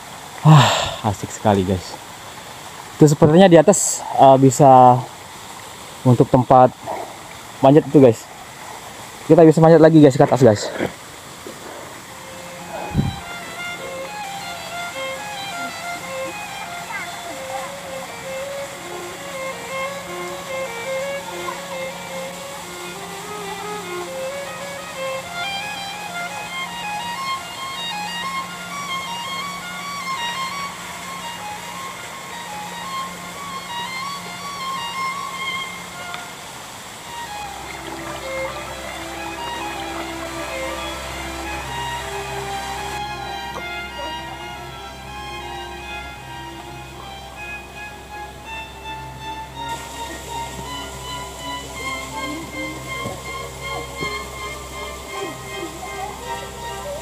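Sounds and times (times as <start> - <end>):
instrumental background music: 12.0 - 57.0.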